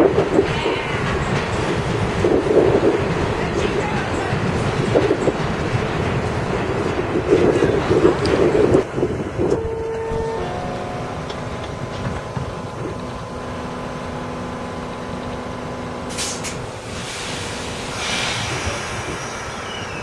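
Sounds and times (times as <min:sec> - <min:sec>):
train rumble: 0:00.0 - 0:20.0
train wheels clattering over rails: 0:00.0 - 0:20.0
steady tones: 0:08.5 - 0:16.1.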